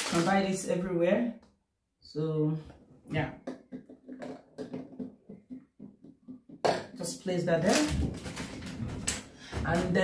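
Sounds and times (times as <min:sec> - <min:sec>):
plastic bottles and packaging crinkling: 0:00.0 - 0:00.7, 0:07.6 - 0:09.9.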